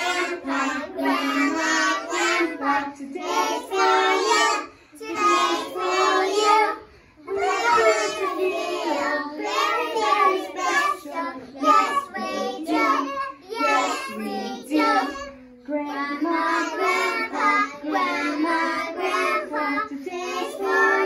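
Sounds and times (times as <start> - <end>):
children singing: 0.0 - 21.0.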